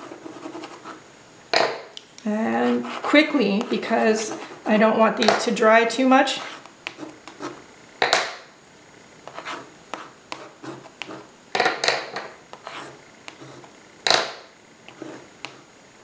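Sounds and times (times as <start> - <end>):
wax crayon scraping on paper: 2.5 - 5.5, 6.3 - 7.6, 9.2 - 11.3, 12.5 - 13.8, 14.9 - 15.7.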